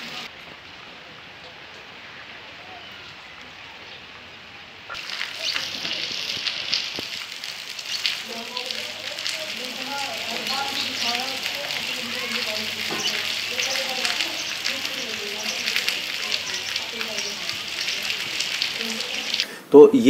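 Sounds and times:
faint voices: 0.0s - 7.3s, 8.0s - 19.9s
rain on rooftops: 0.0s - 19.7s.

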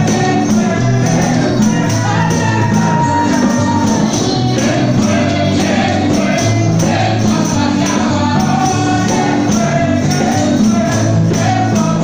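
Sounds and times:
drums: 0.0s - 12.0s
electric guitar: 0.0s - 12.0s
keyboard: 0.0s - 12.0s
voices singing: 0.0s - 12.0s.

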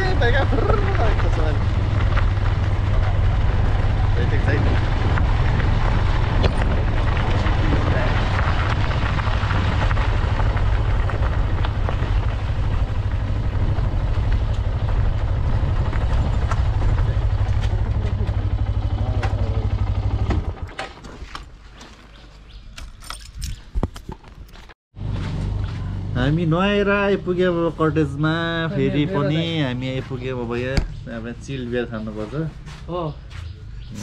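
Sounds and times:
motorcycle engine running: 0.0s - 21.0s
wind rushing over microphone: 1.6s - 17.8s.

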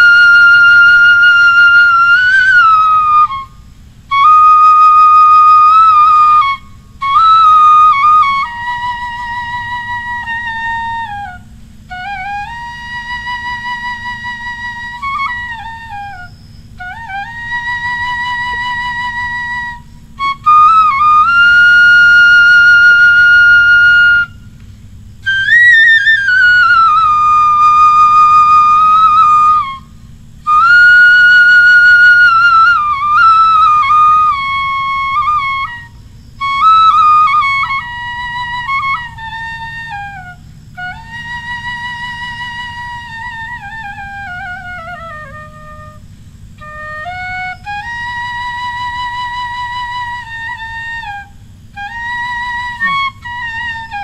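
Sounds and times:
bamboo flute melody: 0.0s - 54.0s.

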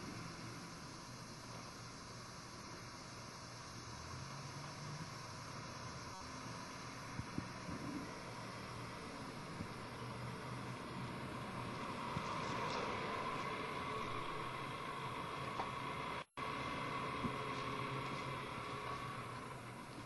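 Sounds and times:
faint low hum: 0.0s - 20.0s
steady background hiss: 0.0s - 20.0s.

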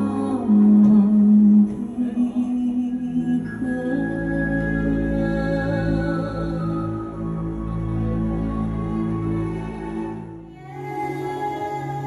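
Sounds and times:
live backing music: 0.0s - 12.0s.

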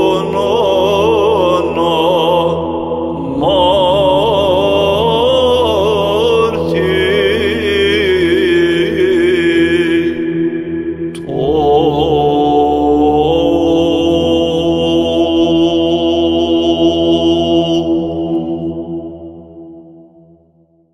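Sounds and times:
held drone note: 0.0s - 20.3s.

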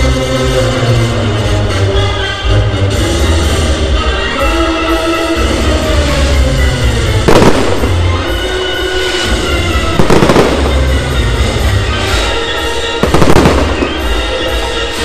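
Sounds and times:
fireworks bursting: 7.1s - 15.0s
fireworks crackle: 7.2s - 8.4s, 9.1s - 11.2s, 11.9s - 14.8s.

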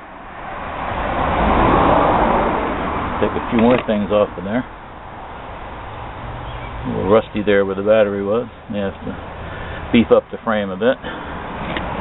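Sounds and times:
road vehicle passing by: 0.0s - 12.0s.

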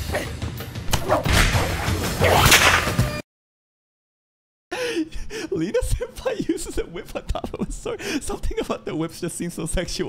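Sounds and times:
whip crack: 0.9s - 3.0s.

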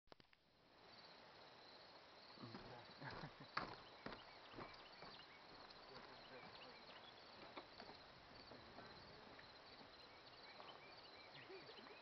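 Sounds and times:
insect chirring: 0.1s - 12.0s
footsteps on wooden planks: 2.5s - 10.8s.

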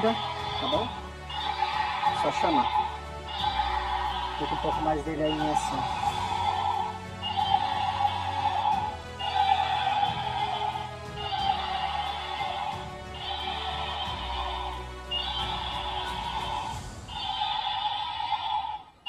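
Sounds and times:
toy dragon recorded roar: 0.1s - 4.8s, 5.8s - 18.9s.

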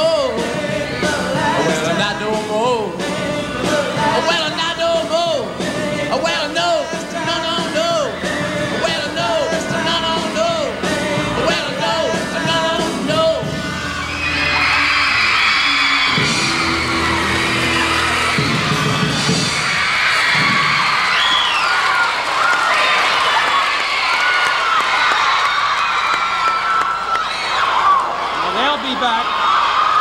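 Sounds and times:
rock band playing: 0.0s - 21.2s
audience screaming and cheering: 0.0s - 30.0s.

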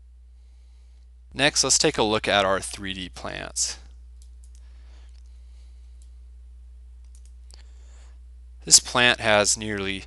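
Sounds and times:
steady low hum: 0.0s - 10.0s
faint computer mouse clicks: 7.0s - 7.6s.

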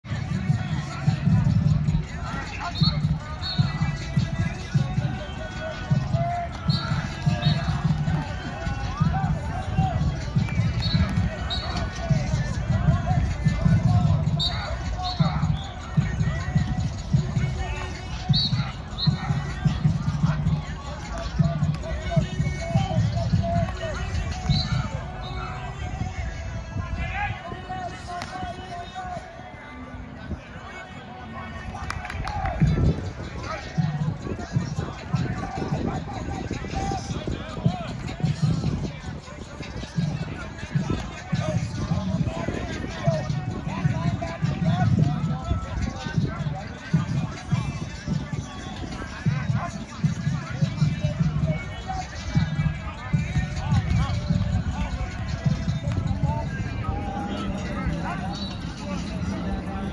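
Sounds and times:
music over loudspeakers: 0.0s - 59.9s
voices calling out: 0.1s - 59.9s
people shouting: 4.8s - 25.7s.

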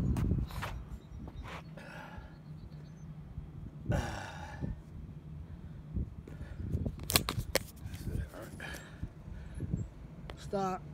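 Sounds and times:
faint breathing: 8.4s - 9.8s.

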